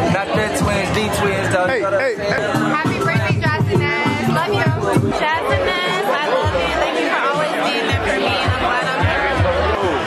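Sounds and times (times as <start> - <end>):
music with bass beat: 0.0 - 6.8, 7.9 - 10.0
party chatter: 0.0 - 10.0.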